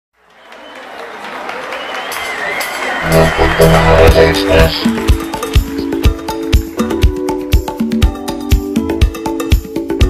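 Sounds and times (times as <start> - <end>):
crowd applause: 0.2 - 7.1
intro music: 3.0 - 9.0.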